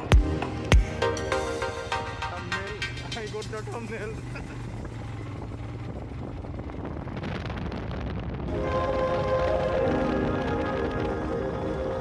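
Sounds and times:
motorcycle engine running: 0.0 - 12.0
wind rush on microphone: 4.6 - 12.0.

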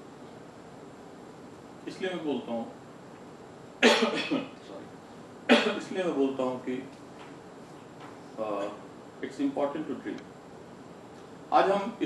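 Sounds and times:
man coughing: 3.8 - 4.6, 5.5 - 5.8.

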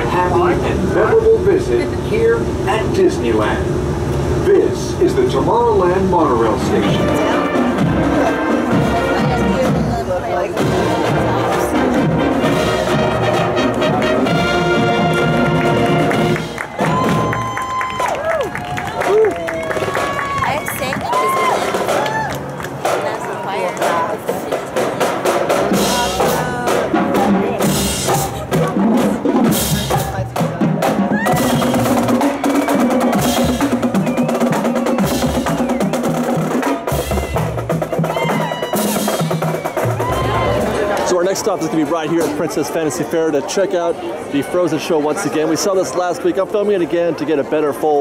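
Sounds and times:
brass band playing a march: 6.4 - 17.5, 24.8 - 41.0
snare drums rapid strokes: 24.7 - 40.3.

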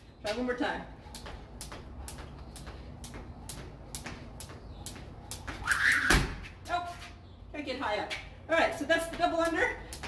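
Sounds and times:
jump rope slapping concrete floor: 1.1 - 6.6, 8.9 - 10.0.

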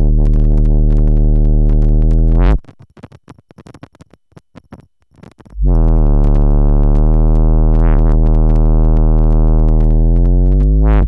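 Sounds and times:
low buzzy synthesizer drone: 0.0 - 2.6, 5.6 - 11.0
static crackle: 0.0 - 11.0.

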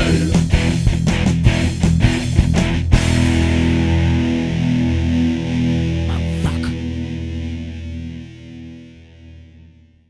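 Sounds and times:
distorted electric guitar chord: 2.8 - 9.9.

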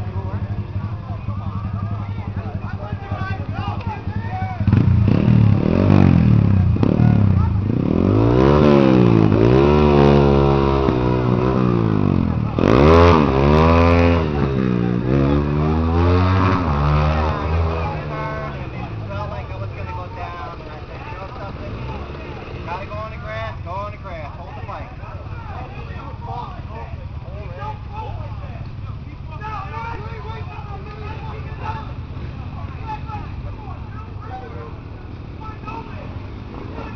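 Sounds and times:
racing motorcycles passing: 0.0 - 36.9.

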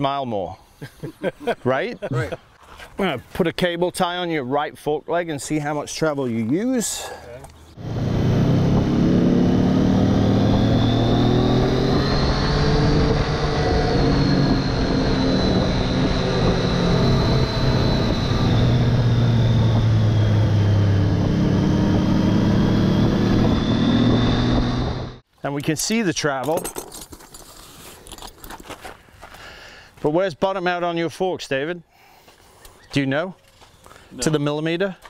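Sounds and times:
motorcycle engine running: 7.8 - 25.2
wind noise rushing: 7.8 - 25.2.

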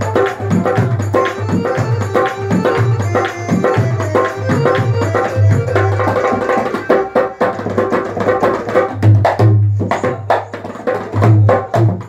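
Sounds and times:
hand drum fast rhythm: 0.0 - 12.0.

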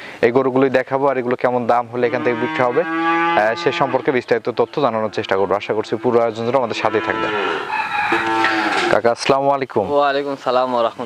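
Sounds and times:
calf mooing: 2.0 - 4.2, 4.8 - 8.9.

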